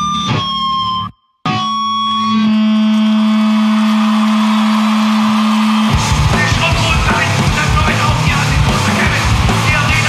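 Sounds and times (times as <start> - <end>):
distorted electric guitar drone: 0.0 - 10.0.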